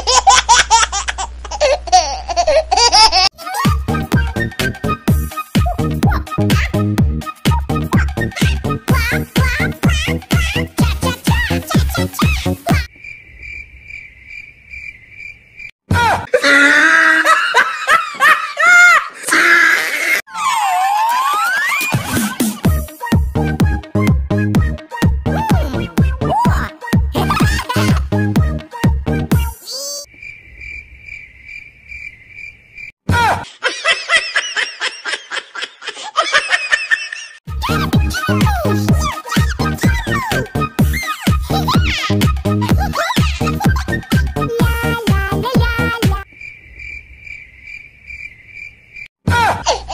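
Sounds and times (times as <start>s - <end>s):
cartoon voices giggling: 0.0s - 4.1s, 7.9s - 12.9s, 15.9s - 22.8s, 25.4s - 28.2s, 33.1s - 46.2s, 49.3s - 49.9s
high-pitched laughter: 0.0s - 4.1s, 15.9s - 22.8s, 25.4s - 28.1s, 33.1s - 46.0s, 49.3s - 49.9s
cricket chirping: 12.9s - 15.8s, 30.1s - 33.0s, 46.2s - 49.1s.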